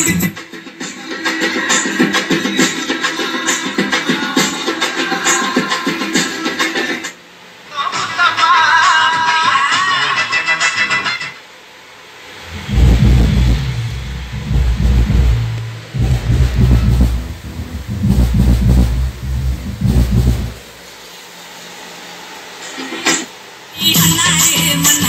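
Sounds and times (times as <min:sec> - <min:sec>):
subwoofer playing deep bass: 0:12.4 - 0:20.9.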